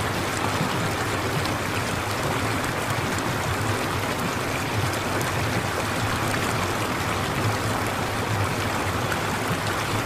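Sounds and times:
flowing water rushing: 0.0 - 10.0.

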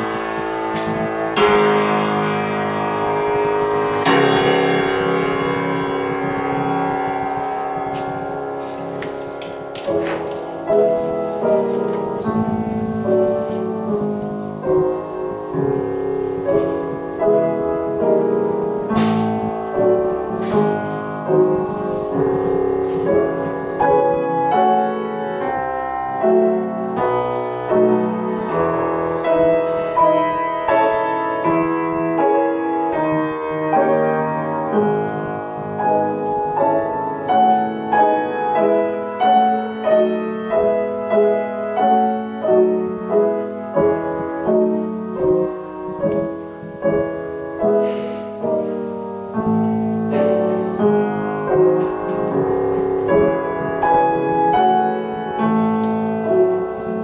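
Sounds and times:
grand piano chords: 0.0 - 57.0.

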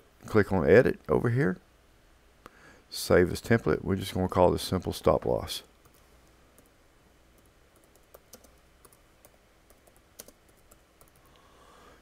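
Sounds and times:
keyboard typing: 7.4 - 11.3.

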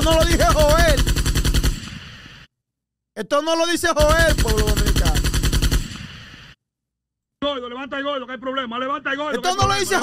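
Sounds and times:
machine-gun fire: 0.0 - 2.5, 4.0 - 6.6.

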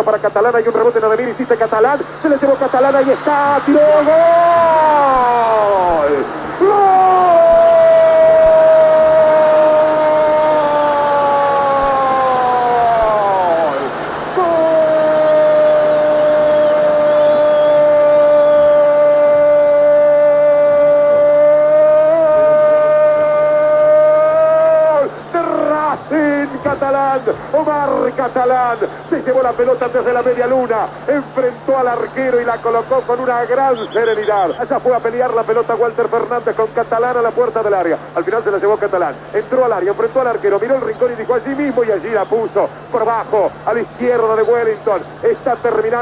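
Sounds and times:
person speaking: 0.0 - 17.2
commentator's long goal cry: 3.6 - 26.6.

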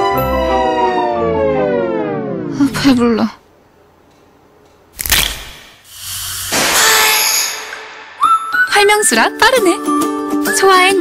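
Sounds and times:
screw cap cracking open: 5.0 - 5.6.

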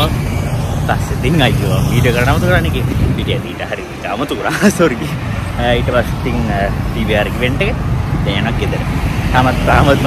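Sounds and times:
speech: 0.9 - 8.8, 9.4 - 10.0.

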